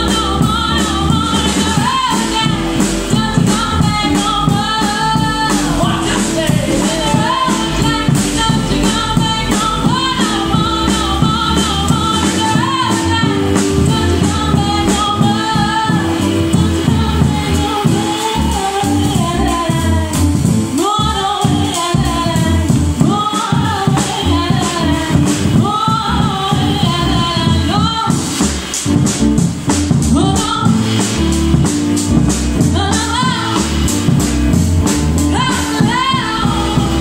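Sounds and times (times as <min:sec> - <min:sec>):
woman singing: 0:00.0 - 0:28.5, 0:30.1 - 0:31.3, 0:32.6 - 0:34.3, 0:35.2 - 0:37.0
drum kit: 0:00.0 - 0:37.0
electric keyboard: 0:00.0 - 0:37.0.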